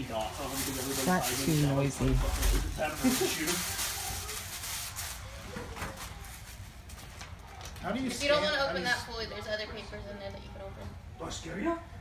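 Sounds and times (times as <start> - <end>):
wrapping paper rustling: 0.0 - 7.9.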